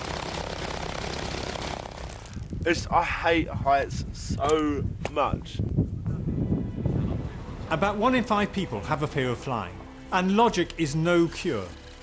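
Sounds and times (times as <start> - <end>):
propeller plane engine running: 0.0 - 2.6, 11.2 - 12.0
wind noise on microphone: 2.1 - 7.8.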